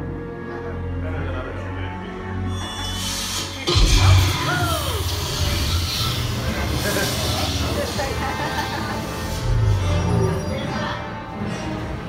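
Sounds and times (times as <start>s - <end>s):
dramatic music: 0.0s - 12.0s
falling whine: 2.7s - 10.9s
loud low rumble: 3.7s - 8.3s.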